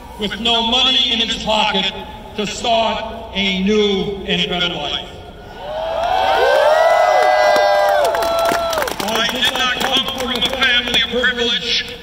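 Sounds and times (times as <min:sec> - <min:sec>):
crowd cheering and whooping: 0:05.5 - 0:09.0.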